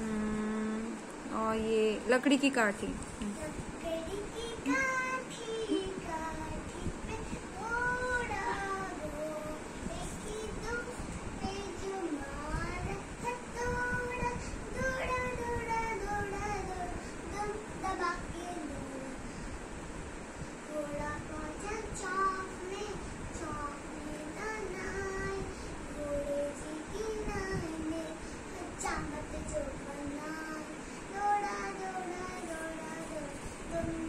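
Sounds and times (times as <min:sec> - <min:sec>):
young child singing: 0:03.3 - 0:19.2, 0:20.6 - 0:34.0.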